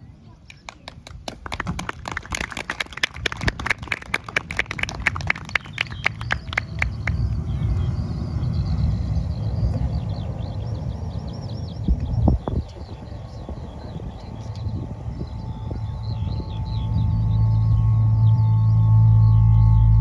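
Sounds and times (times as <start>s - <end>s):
small audience clapping: 0.4s - 7.3s
low rumble: 1.6s - 20.0s
faint high chirping: 5.6s - 20.0s.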